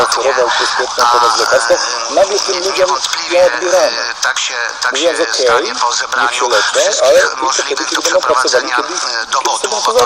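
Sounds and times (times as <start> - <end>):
person speaking on radio: 0.0 - 10.0.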